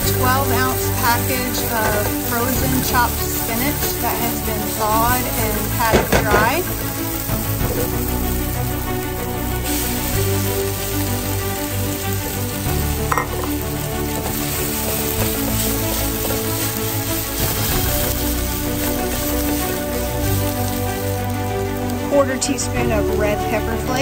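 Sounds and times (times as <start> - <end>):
spatula stirring: 0.0 - 21.8
vegetables sizzling in skillet: 0.0 - 24.0.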